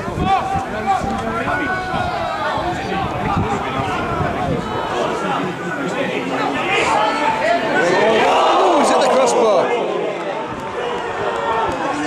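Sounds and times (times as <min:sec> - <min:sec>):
football crowd shouting: 0:00.0 - 0:12.0.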